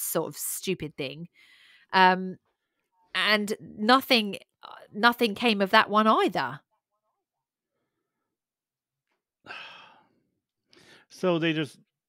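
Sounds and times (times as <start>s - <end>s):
quiet breath in: 1.3s - 1.9s, 9.5s - 11.1s
person sighing: 9.5s - 10.1s.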